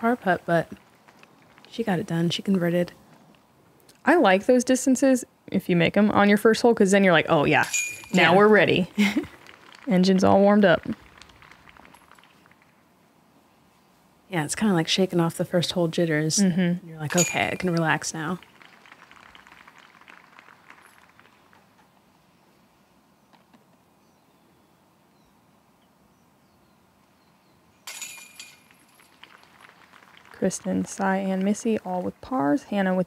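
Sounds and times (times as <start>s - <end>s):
faint outdoor ambience: 0.0s - 33.0s
metal chains rattling and jingling: 7.6s - 8.8s, 17.1s - 19.0s, 27.8s - 30.1s
faint bird chirps: 22.0s - 27.8s.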